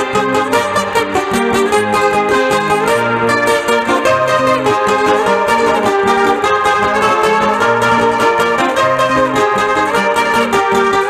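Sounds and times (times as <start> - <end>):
guitars strumming: 0.0 - 11.0.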